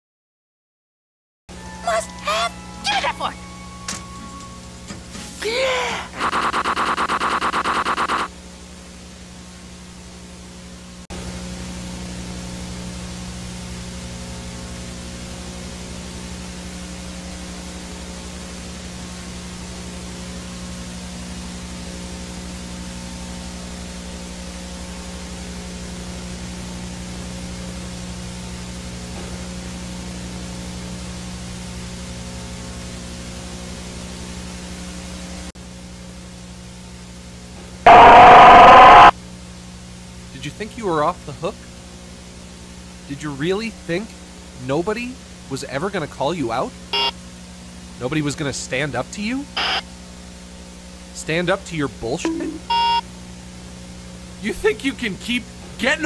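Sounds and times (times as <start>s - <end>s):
loud distorted blare: 6.0s - 8.3s, 37.9s - 39.1s, 49.6s - 49.8s
electronic drone of low tones: 6.2s - 8.3s, 37.9s - 39.1s, 49.6s - 49.8s.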